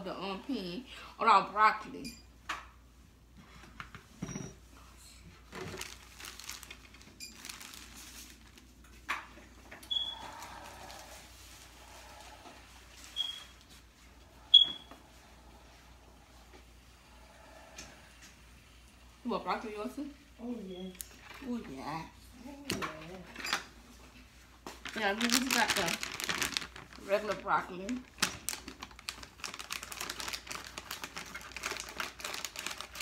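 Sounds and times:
plastic bag rustling: 0:05.3 - 0:14.0, 0:24.7 - 0:33.0.

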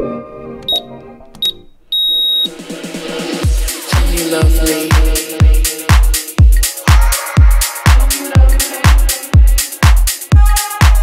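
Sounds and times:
background music: 0:00.0 - 0:01.8, 0:02.4 - 0:11.0
timer beeps: 0:00.7 - 0:02.5
electronic dance music with beat: 0:02.2 - 0:11.0.

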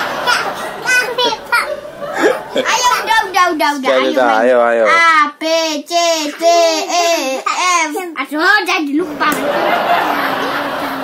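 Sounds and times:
young children calling out: 0:02.5 - 0:08.2.

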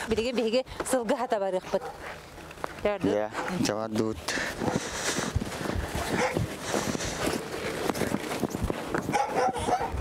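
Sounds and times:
footsteps crunching on frozen snow: 0:01.8 - 0:09.9.

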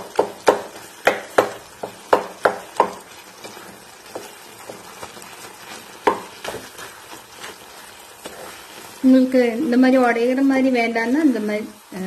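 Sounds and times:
wood knocking against a pan: 0:00.0 - 0:05.2, 0:06.0 - 0:06.7
wooden spatula scraping a pan: 0:00.0 - 0:12.0.

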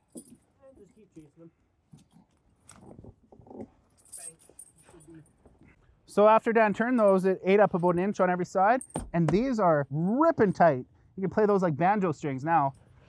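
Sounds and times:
snow chains clinking: 0:03.8 - 0:05.4, 0:06.1 - 0:10.6.

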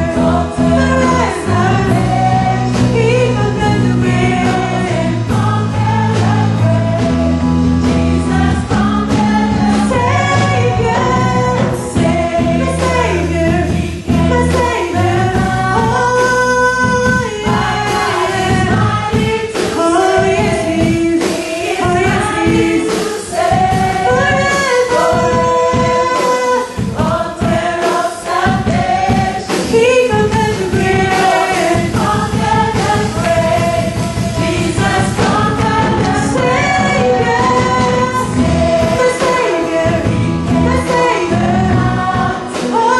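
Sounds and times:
electric bass guitar: 0:00.0 - 0:19.3, 0:31.8 - 0:42.9
gospel singing: 0:00.0 - 0:42.9
keyboard: 0:00.0 - 0:42.9.

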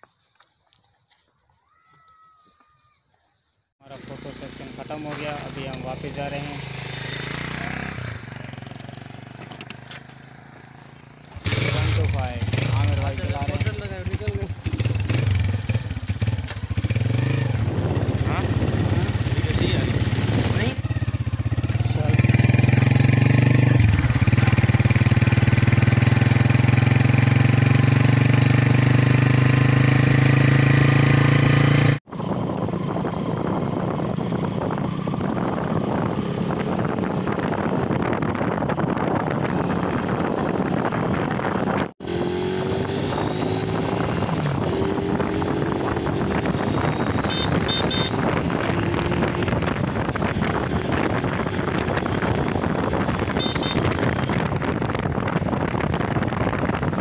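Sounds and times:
small motorcycle engine running: 0:03.9 - 0:57.0
wind on microphone: 0:14.6 - 0:26.6, 0:32.1 - 0:57.0.

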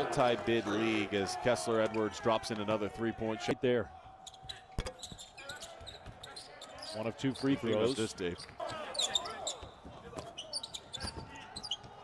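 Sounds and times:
sneaker squeaks on floor: 0:04.3 - 0:12.0.

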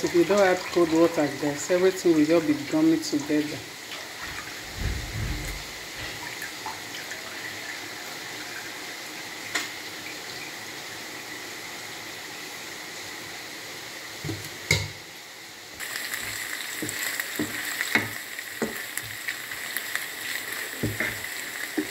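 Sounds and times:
sauce sizzling in a pan: 0:00.0 - 0:04.7, 0:05.6 - 0:21.9
wooden spatula knocking pan: 0:16.8 - 0:19.2, 0:20.8 - 0:21.9.

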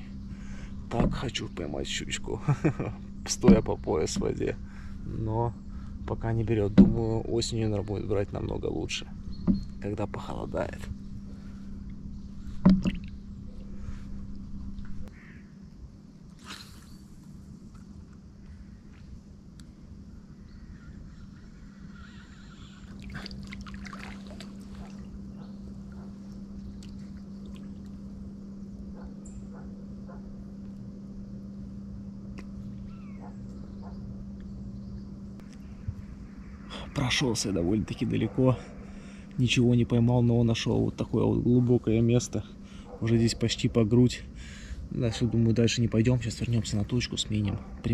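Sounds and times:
steady low hum: 0:00.0 - 0:47.9
water sloshing: 0:09.1 - 0:15.0, 0:22.8 - 0:28.1.

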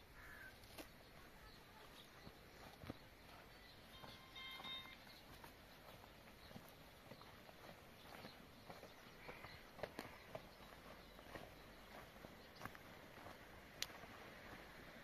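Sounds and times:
footsteps on grass: 0:00.0 - 0:15.0
faint tone: 0:03.9 - 0:05.1.

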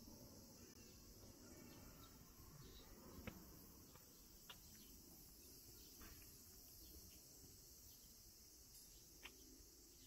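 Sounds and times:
insects chorus: 0:00.0 - 0:10.0
faint ticks: 0:08.7 - 0:09.5.

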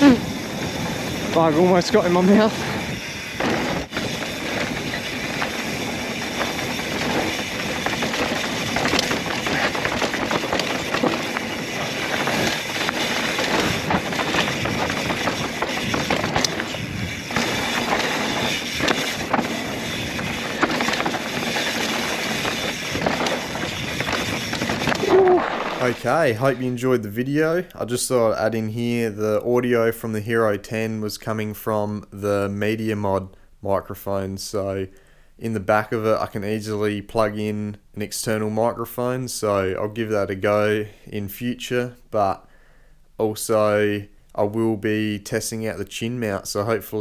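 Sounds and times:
bike clicks and rattles: 0:00.0 - 0:26.6
tyre and wind rush: 0:00.0 - 0:26.8.

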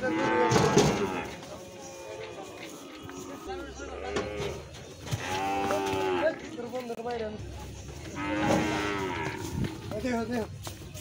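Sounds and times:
cow mooing: 0:08.2 - 0:09.5.

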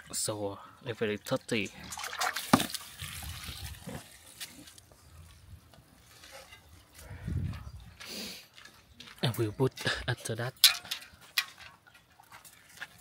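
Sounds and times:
water splashing into metal pot: 0:01.6 - 0:03.5.

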